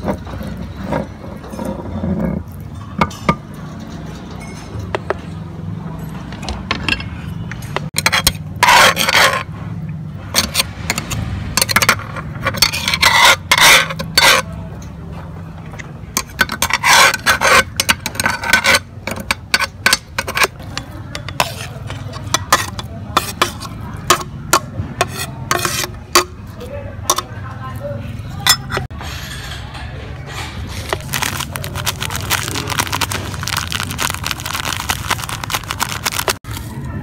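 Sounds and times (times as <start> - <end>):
meat grinder scraping: 8.0 - 9.5, 10.4 - 14.5, 16.2 - 24.3, 25.0 - 26.0, 30.7 - 36.6.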